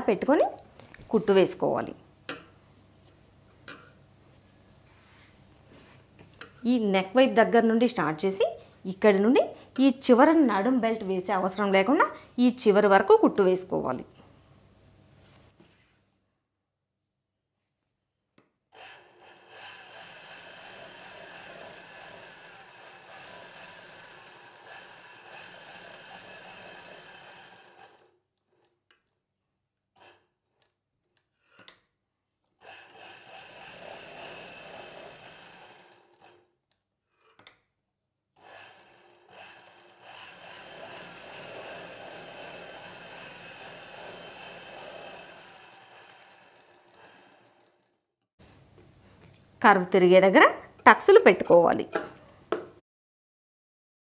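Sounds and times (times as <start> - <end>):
sewing machine stitching: 18.7 - 28.8, 29.9 - 30.7, 32.6 - 36.6, 38.4 - 48.0.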